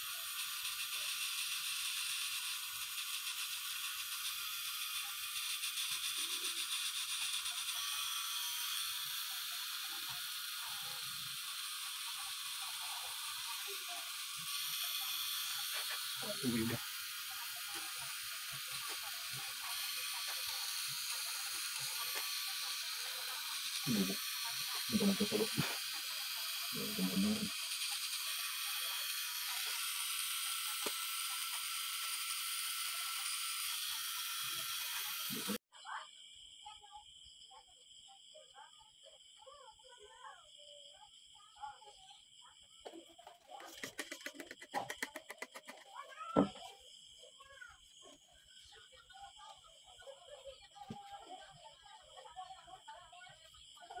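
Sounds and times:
tattoo machine buzzing: 0:00.0 - 0:35.7, 0:43.5 - 0:46.6
quick clicks: 0:43.6 - 0:46.0.

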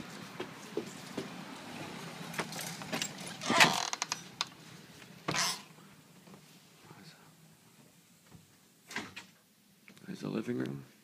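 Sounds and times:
door scraping open: 0:02.4 - 0:04.3, 0:05.3 - 0:05.7.

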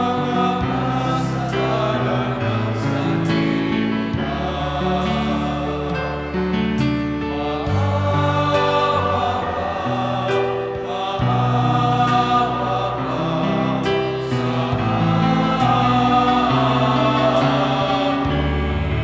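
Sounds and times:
choir singing a hymn: 0:00.0 - 0:19.0
instrumental accompaniment with bass: 0:00.0 - 0:19.0.

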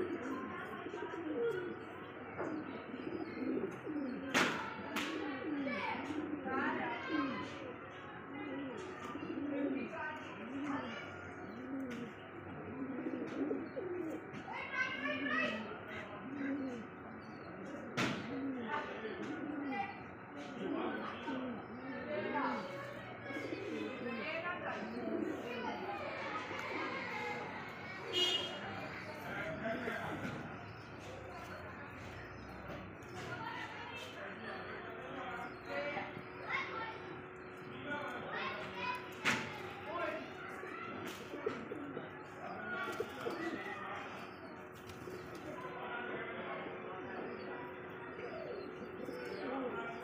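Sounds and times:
pigeons cooing: 0:00.0 - 0:50.0.

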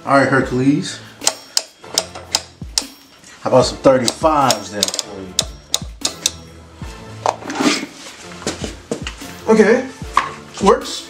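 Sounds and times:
dumbbell dial clicking: 0:01.2 - 0:03.0, 0:04.0 - 0:06.4.

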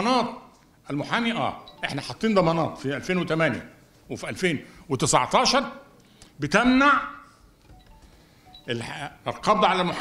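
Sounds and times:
man speaking into microphone: 0:00.0 - 0:07.3, 0:08.7 - 0:10.0.

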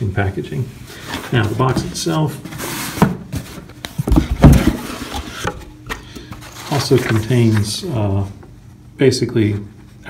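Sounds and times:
cardboard box knocks and thumps: 0:03.0 - 0:05.6.

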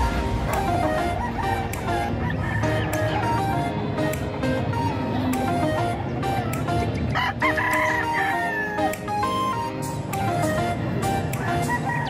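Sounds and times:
background music: 0:00.0 - 0:12.0
roosters crowing and clucking: 0:07.1 - 0:09.0, 0:11.3 - 0:12.0.

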